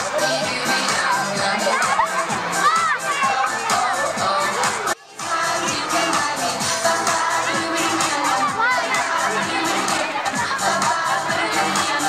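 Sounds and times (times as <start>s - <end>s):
children shouting and cheering: 0.0s - 12.0s
music playing: 0.0s - 12.0s.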